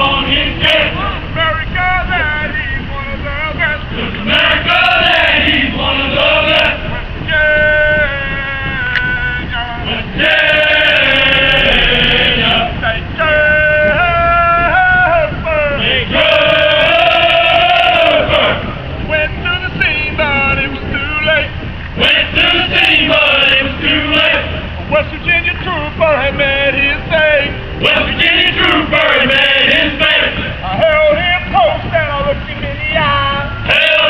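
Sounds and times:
group singing together: 0.0 - 34.0.

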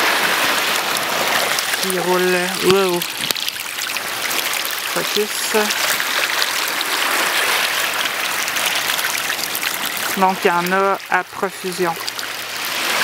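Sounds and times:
small fish splashes: 0.0 - 13.0.

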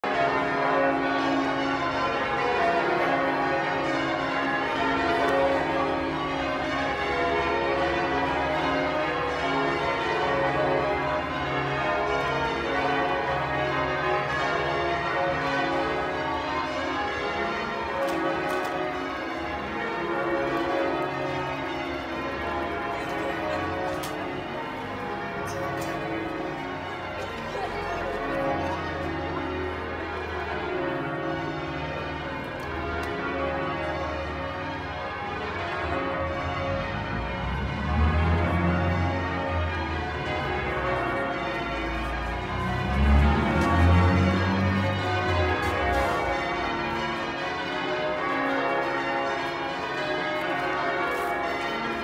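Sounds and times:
church bells pealing: 0.0 - 52.0.

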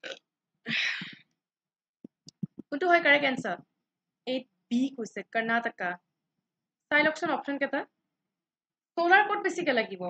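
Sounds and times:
woman breathing: 0.7 - 1.3.

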